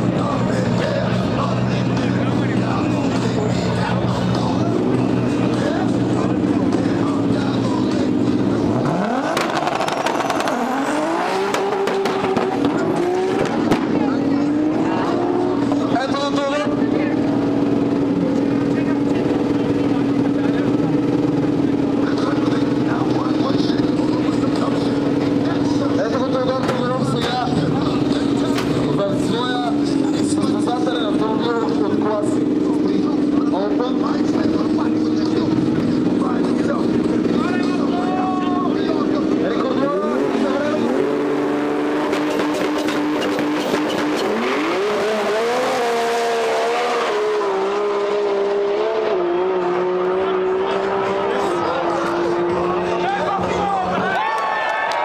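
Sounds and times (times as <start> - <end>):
voices: 0.0 - 9.4, 10.4 - 41.6, 48.5 - 55.0
race car engine accelerating: 0.0 - 54.2.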